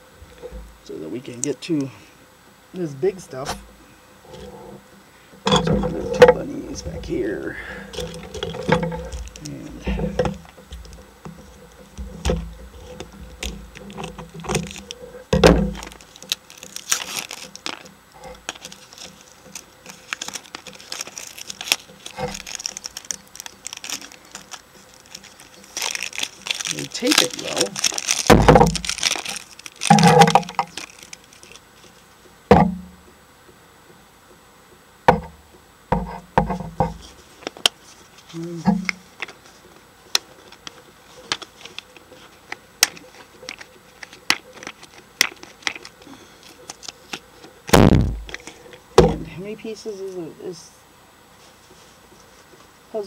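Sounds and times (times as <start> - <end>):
plastic rustling: 5.3 - 32.2, 36.5 - 49.9
plastic toys clicking and knocking: 7.9 - 31.6, 40.1 - 47.5.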